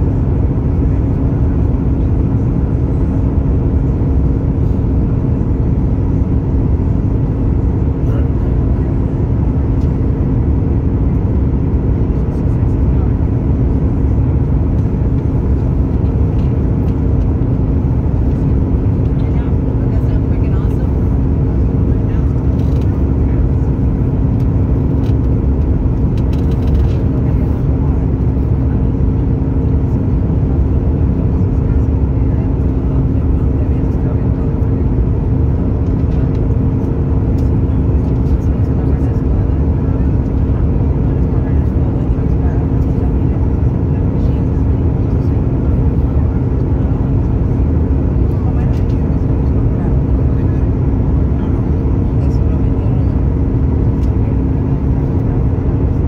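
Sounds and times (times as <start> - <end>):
airplane cabin engine rumble: 0.0 - 56.0
steady cabin hum: 0.0 - 56.0.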